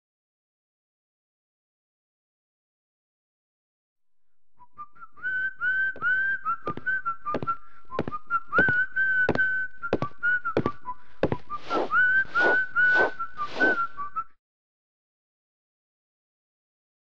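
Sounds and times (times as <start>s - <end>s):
person whistling a tune: 4.6s - 14.4s
broom sweeping a hard floor: 11.2s - 13.9s.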